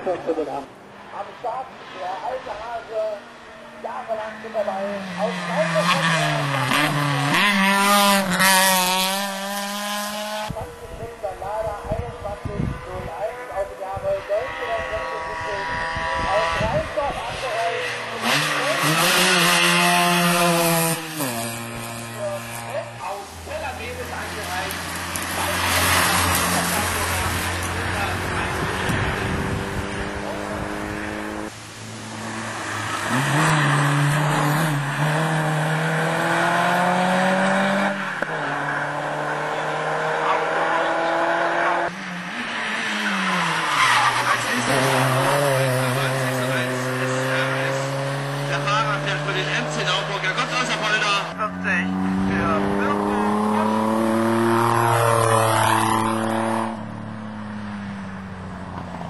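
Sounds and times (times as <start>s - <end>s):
race car engine at high revs: 1.2s - 59.0s.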